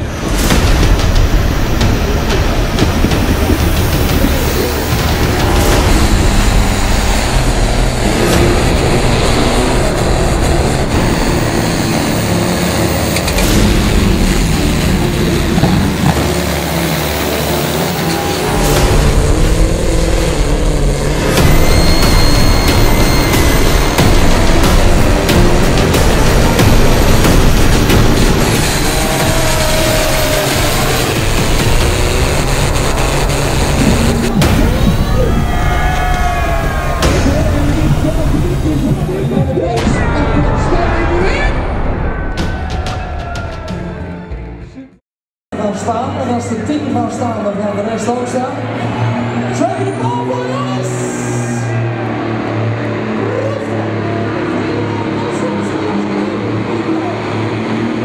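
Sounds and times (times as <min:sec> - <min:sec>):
pulling tractor engines at full throttle: 0:00.0 - 0:41.1, 0:45.7 - 0:58.0
music: 0:00.0 - 0:45.0, 0:45.6 - 0:58.0.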